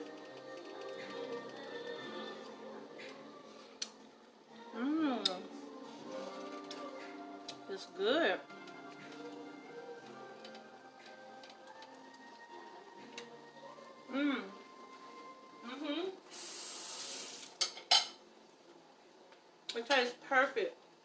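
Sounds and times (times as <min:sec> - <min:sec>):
faint background music: 0:00.0 - 0:21.0
hiss: 0:16.3 - 0:17.6
dishes clattering: 0:17.6 - 0:18.2.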